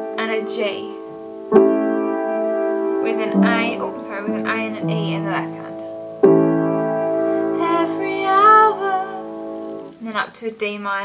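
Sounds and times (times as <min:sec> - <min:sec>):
piano chord ringing: 0:00.0 - 0:09.9.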